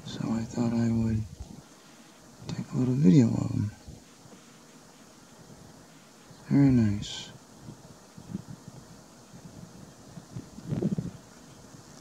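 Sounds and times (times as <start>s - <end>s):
wind buffeting microphone: 7.6s - 11.9s.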